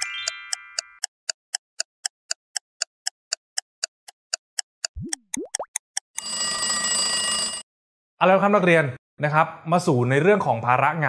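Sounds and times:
clock ticking timer: 0.0 - 6.7.

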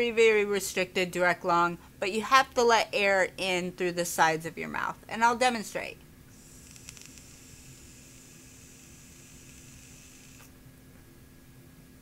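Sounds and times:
airy hiss of vape draw: 6.3 - 10.5.

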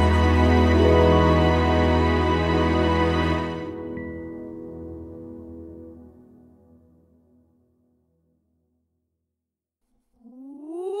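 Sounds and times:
song music: 0.0 - 4.8.

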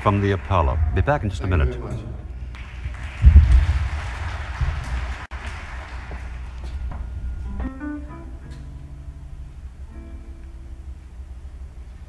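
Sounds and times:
room hum: 0.0 - 12.0
low heavy thumps: 0.4 - 5.2.

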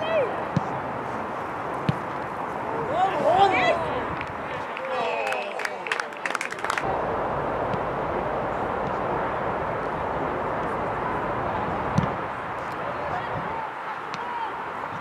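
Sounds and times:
players shouting: 0.0 - 7.0, 8.8 - 15.0
ball being kicked: 1.8 - 2.2, 11.9 - 12.2
wind noise on microphone: 6.8 - 13.6.

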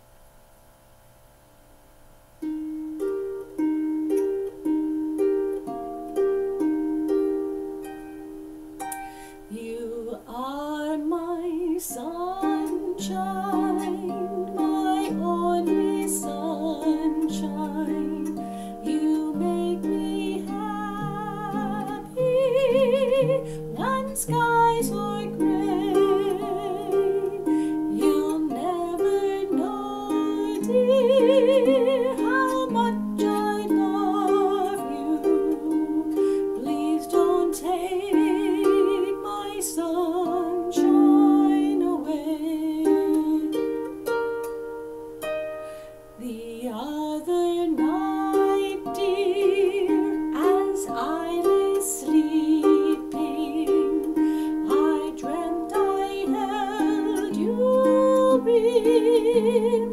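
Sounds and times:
woman singing with vibrato: 9.4 - 44.2, 46.2 - 59.9.

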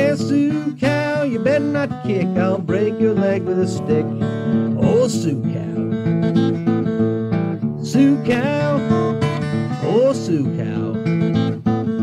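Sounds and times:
acoustic guitar picking: 0.0 - 12.0.

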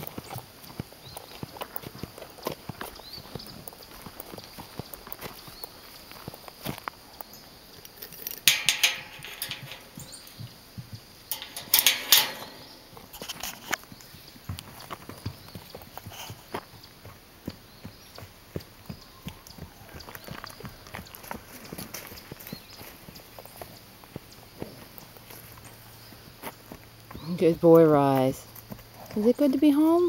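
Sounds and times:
horse hooves on grass: 0.0 - 30.0.

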